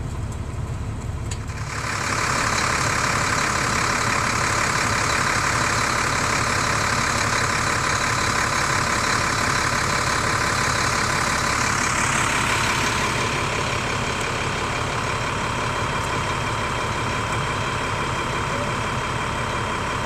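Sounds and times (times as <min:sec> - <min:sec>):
vehicle engines idling: 0:00.0 - 0:20.0.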